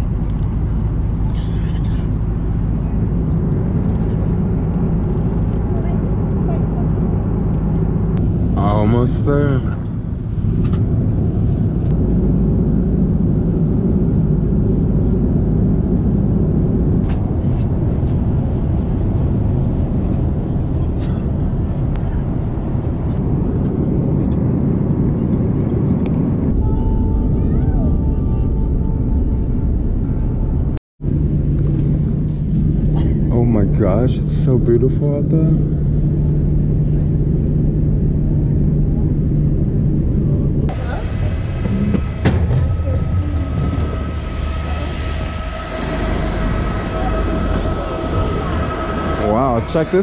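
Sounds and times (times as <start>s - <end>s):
jet engines rumbling: 0.0s - 50.0s
air rushing past fuselage: 39.6s - 50.0s.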